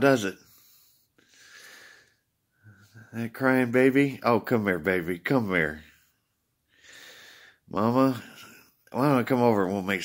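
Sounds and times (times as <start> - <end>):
man speaking: 0.0 - 0.5, 2.8 - 6.0, 7.7 - 10.0
man breathing in: 0.5 - 3.0, 6.7 - 7.7.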